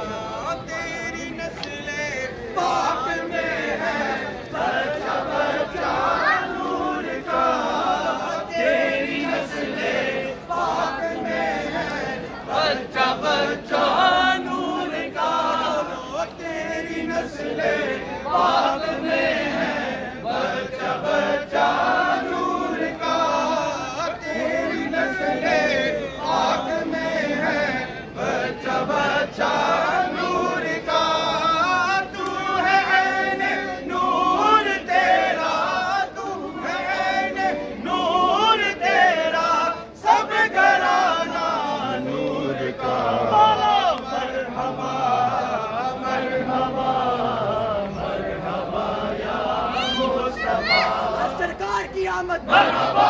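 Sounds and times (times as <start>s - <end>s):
crowd of men chanting: 0.0s - 53.0s.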